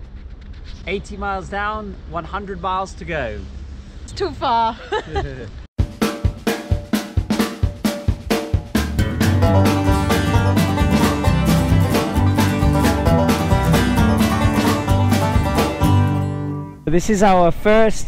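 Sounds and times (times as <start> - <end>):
upbeat band music: 5.8 - 16.7.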